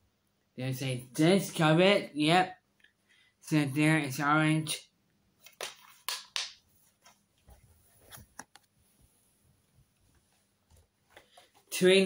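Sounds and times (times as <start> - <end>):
faint handling noise: 6.7 - 11.7.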